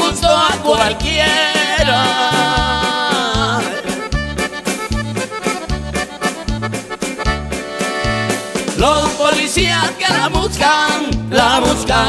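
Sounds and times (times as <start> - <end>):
accordion melody: 0.0 - 12.0
bass guitar: 0.0 - 12.0
percussion beat: 0.0 - 12.0.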